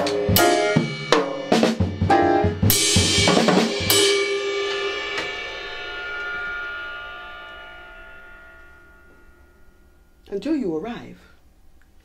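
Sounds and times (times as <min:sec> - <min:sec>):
drums playing: 0:00.0 - 0:08.5
cymbal crash ringing: 0:00.4 - 0:10.4.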